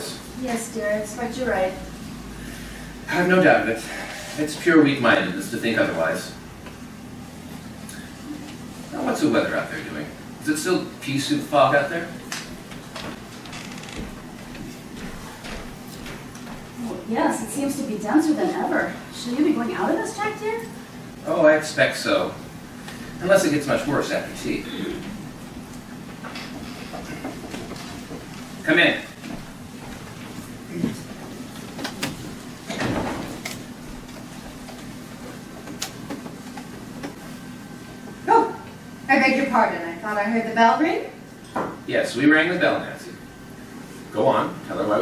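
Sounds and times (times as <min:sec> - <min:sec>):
steady low hum: 0:00.0 - 0:45.0
footsteps on stage: 0:12.4 - 0:16.8
door opening with rumble: 0:13.0 - 0:14.2.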